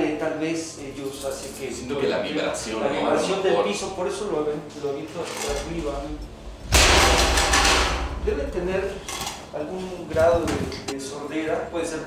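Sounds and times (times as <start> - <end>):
metal dish crashing on tiled floor: 6.7 - 8.3.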